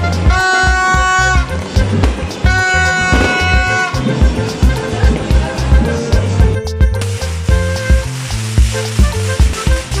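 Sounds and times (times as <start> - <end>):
music with heavy beat: 0.0 - 10.0
firework fountain hissing: 0.2 - 10.0.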